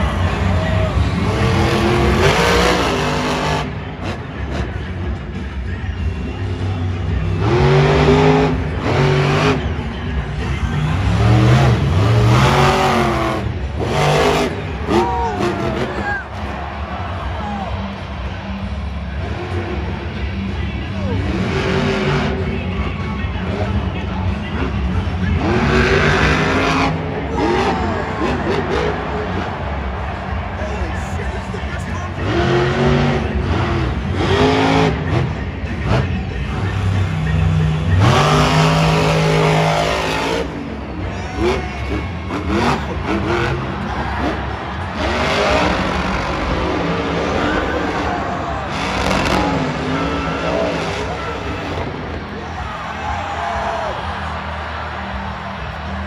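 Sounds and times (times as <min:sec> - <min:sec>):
truck engine revving: 0:00.0 - 0:56.0.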